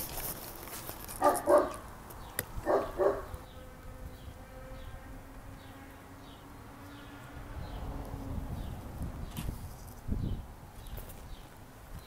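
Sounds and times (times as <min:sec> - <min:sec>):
dog barking: 0:01.2 - 0:01.8, 0:02.6 - 0:03.3.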